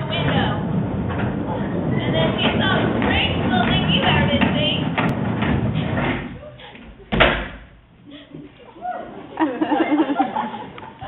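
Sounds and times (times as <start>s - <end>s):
skateboard wheels rolling on wood: 0.0s - 7.2s.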